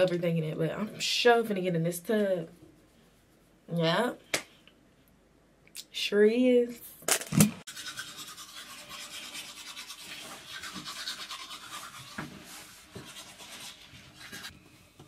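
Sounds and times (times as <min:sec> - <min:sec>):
toothbrush scrubbing: 0:07.7 - 0:14.5.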